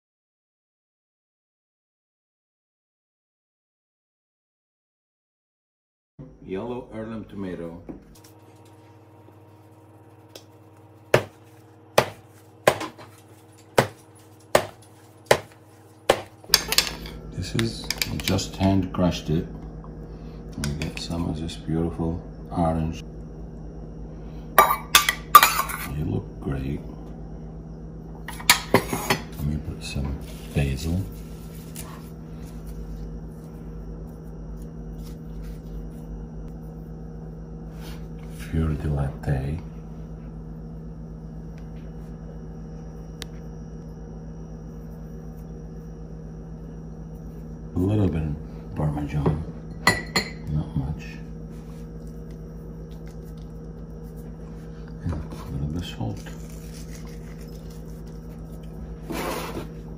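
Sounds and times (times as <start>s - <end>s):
low room hum: 6.2s - 59.9s
dough slapped on countertop: 11.2s - 11.4s, 12.0s - 13.1s, 13.8s - 14.0s, 14.6s - 16.3s.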